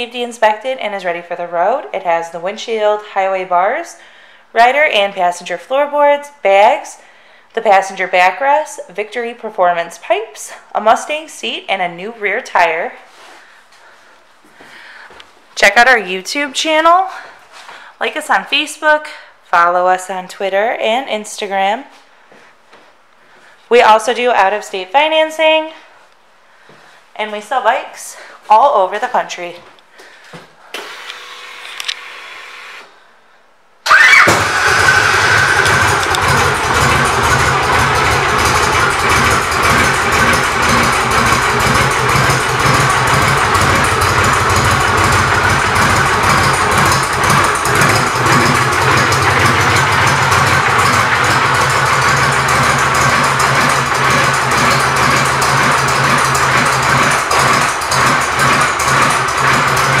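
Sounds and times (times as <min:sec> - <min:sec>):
motorcycle engine starting and idling: 0:33.8 - 1:00.0.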